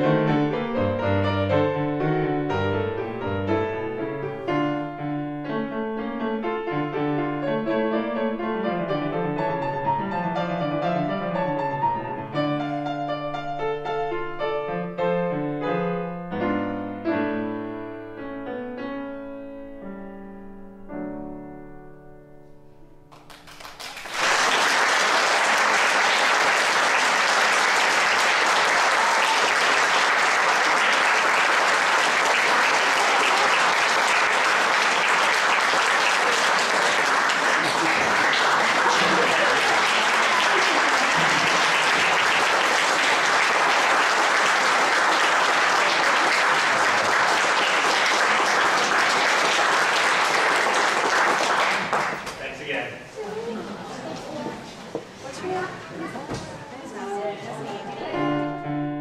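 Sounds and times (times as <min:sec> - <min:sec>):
audience applauding: 0:23.1 - 0:52.8.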